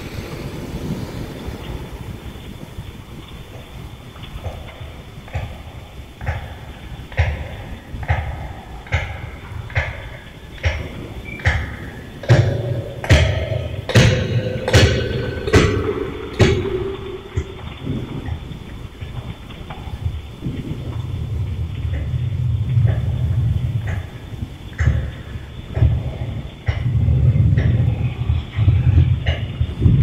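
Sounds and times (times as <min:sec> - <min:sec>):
low steady hum: 0:00.0 - 0:30.0
scattered knocks: 0:03.3 - 0:30.0
sharp thuds: 0:04.4 - 0:18.8.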